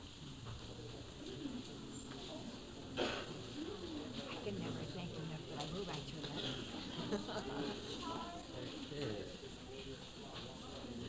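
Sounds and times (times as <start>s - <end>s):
people talking indistinctly: 1.2s - 11.0s.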